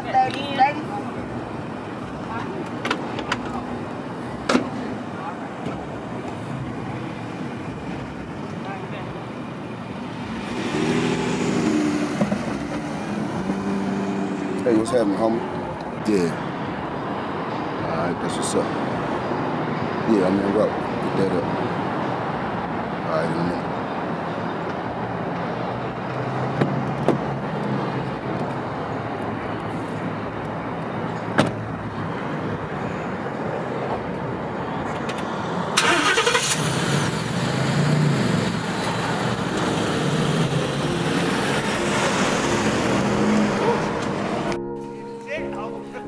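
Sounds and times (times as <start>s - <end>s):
vehicle rumble: 0.0s - 45.2s.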